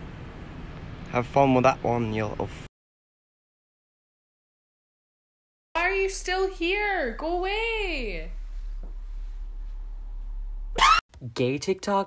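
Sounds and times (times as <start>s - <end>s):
steady low hum: 5.8s - 11.0s
short loud rising cry: 10.8s - 11.0s.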